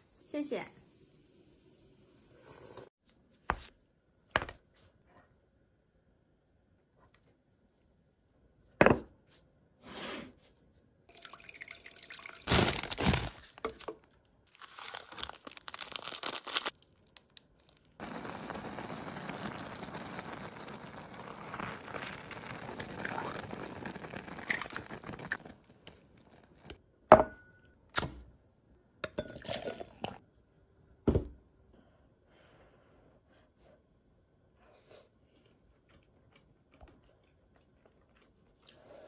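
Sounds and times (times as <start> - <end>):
rustling and handling: 12.4 - 18.0
pot of broth bubbling: 18.0 - 26.8.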